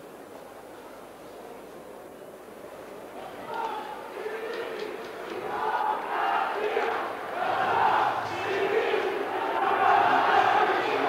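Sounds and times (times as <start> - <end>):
crowd chanting and shouting: 3.2 - 11.0.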